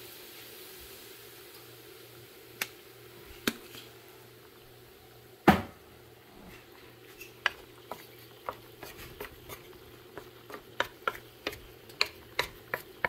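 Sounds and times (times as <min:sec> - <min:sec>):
wooden spatula on frying pan: 0:06.5 - 0:13.0.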